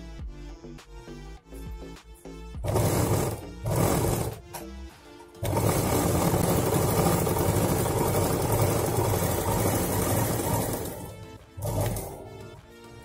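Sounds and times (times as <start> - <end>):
sewing machine stitching: 2.6 - 4.7, 5.4 - 12.7.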